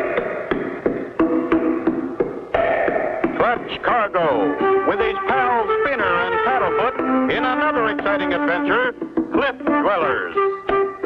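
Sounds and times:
cartoon theme music: 3.4s - 11.0s.

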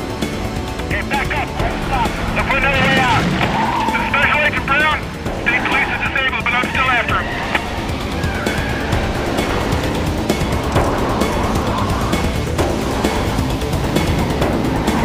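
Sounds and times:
low rumble of engines: 0.0s - 15.0s
car tires squealing: 1.2s - 15.0s.

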